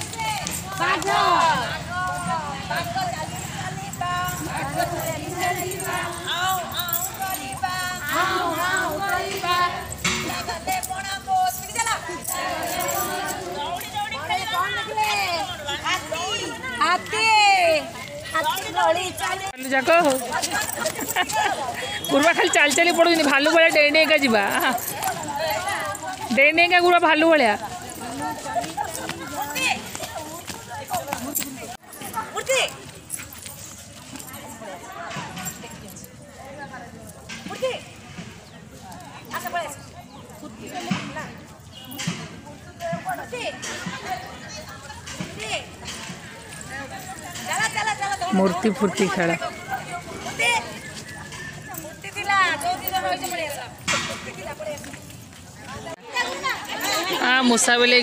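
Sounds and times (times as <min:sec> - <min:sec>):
women chanting: 0:00.0 - 0:30.8
women talking and calling: 0:00.0 - 0:58.0.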